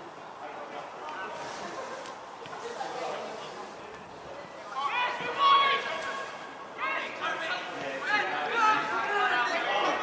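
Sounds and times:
steady background noise: 0:00.0 - 0:10.0
distant shouts of players: 0:04.6 - 0:10.0.

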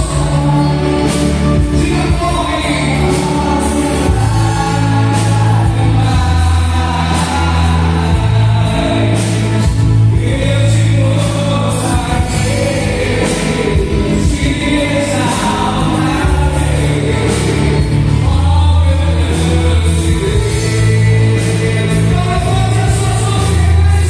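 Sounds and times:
backing music with bass and beat: 0:00.0 - 0:24.0
man singing into microphone: 0:00.0 - 0:24.0.

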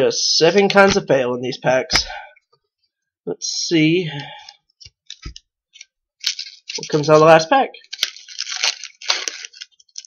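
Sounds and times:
foil wrapper crinkling and tearing: 0:05.1 - 0:10.0.

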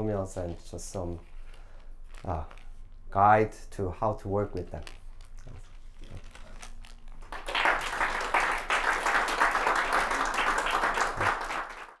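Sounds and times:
audience applauding: 0:07.3 - 0:12.0.

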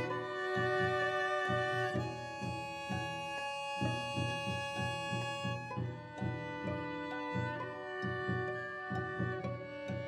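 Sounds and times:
string quartet playing: 0:00.0 - 0:10.0.

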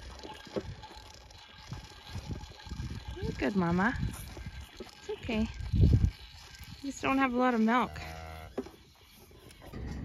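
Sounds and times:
cow mooing: 0:07.7 - 0:08.6.

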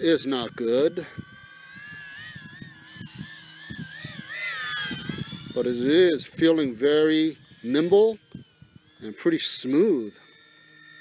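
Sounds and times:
quadcopter motors whining: 0:00.0 - 0:11.0.

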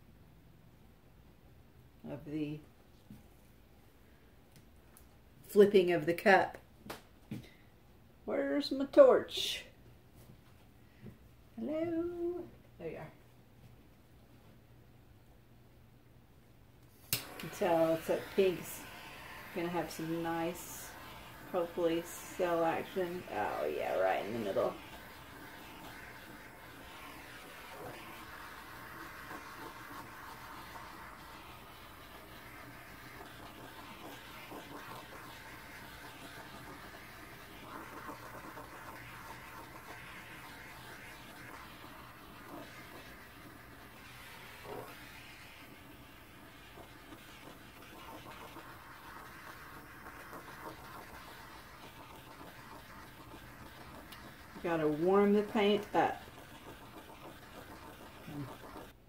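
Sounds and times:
gas torch flame hissing: 0:16.9 - 0:59.0.

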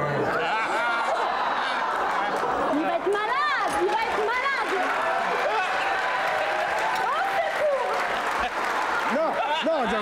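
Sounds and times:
studio chatter: 0:00.0 - 0:10.0.

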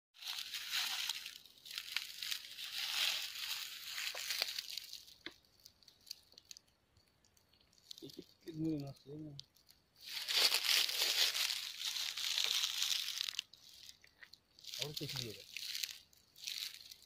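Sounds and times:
dry leaves crunching: 0:00.2 - 0:06.5, 0:10.0 - 0:17.0.

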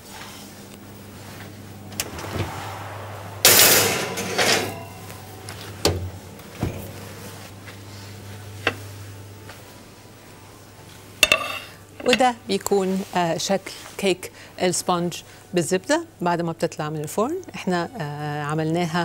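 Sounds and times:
low steady hum: 0:00.0 - 0:13.3.

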